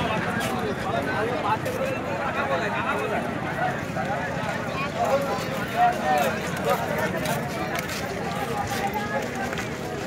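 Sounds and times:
babble of voices outdoors: 0.0 - 10.0.

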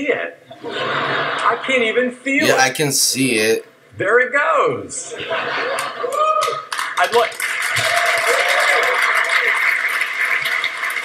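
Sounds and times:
audience applauding and cheering: 5.6 - 11.0.

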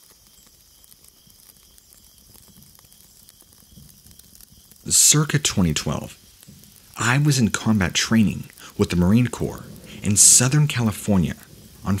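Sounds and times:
faint steady hiss: 0.0 - 12.0
soft crackles: 0.0 - 12.0
person speaking: 4.8 - 6.2, 6.9 - 12.0.

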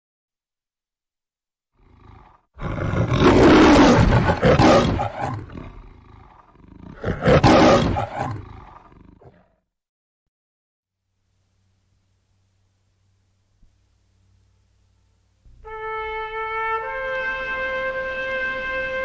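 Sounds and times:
lion growling and roaring: 1.8 - 9.6.

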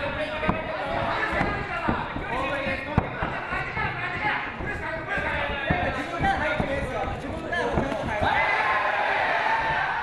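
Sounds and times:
bare feet thudding on canvas: 0.0 - 10.0
voices in a hall: 0.0 - 10.0.

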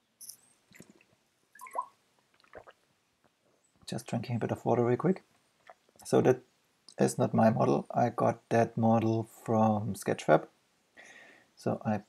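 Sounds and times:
person sipping and swallowing water: 0.7 - 2.8.

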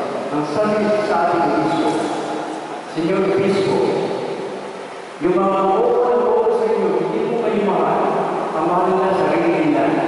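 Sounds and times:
man chanting through a microphone: 2.9 - 4.3, 5.2 - 10.0.

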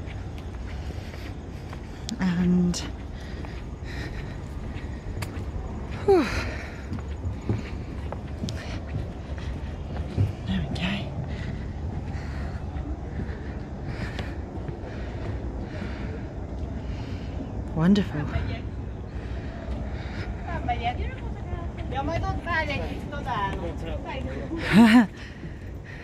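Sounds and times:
low rumble: 0.0 - 23.2
distant voices: 0.0 - 26.0
footsteps on wooden boards: 2.9 - 17.3.

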